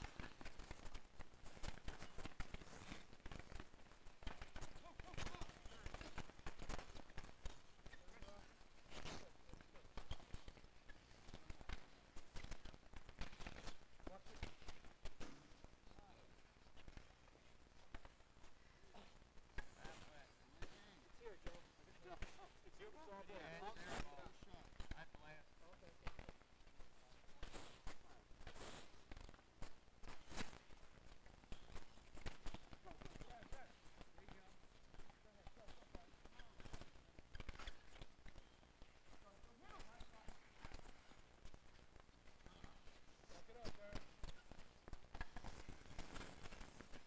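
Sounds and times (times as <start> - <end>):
hockey sticks clacking on ball: 0.0 - 15.8, 26.0 - 47.0.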